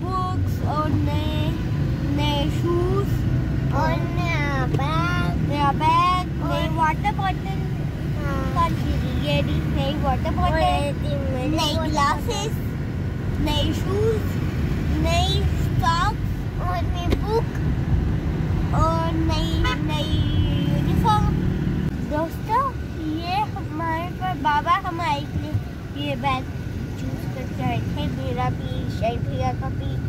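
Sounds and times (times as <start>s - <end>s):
child talking: 0.0s - 12.7s, 13.4s - 17.6s, 18.6s - 21.4s, 22.0s - 30.0s
car driving rumble: 0.0s - 30.0s.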